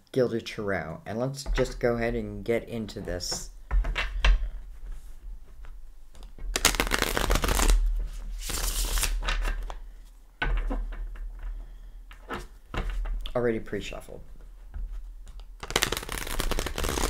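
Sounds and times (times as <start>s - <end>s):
cards being shuffled: 5.6s - 9.8s, 15.2s - 17.0s.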